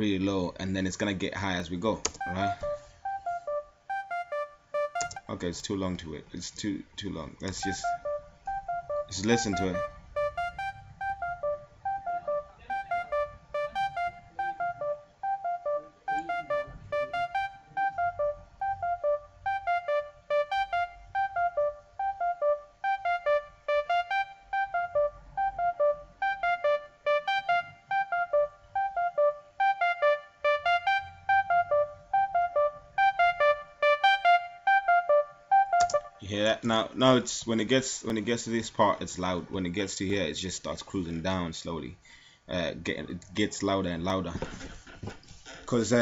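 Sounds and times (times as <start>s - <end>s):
synth lead melody: 2.2s - 5.3s, 7.6s - 36.3s.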